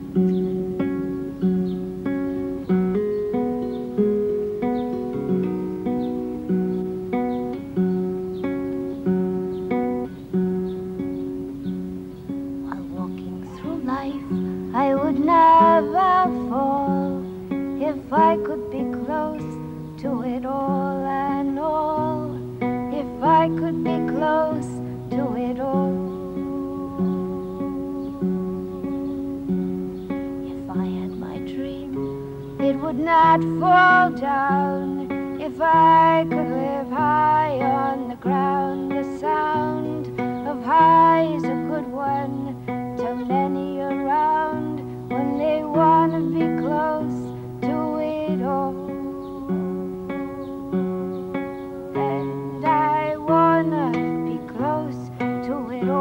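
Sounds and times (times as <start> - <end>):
acoustic guitar fingerpicked: 0.0 - 56.0
woman singing: 12.6 - 56.0.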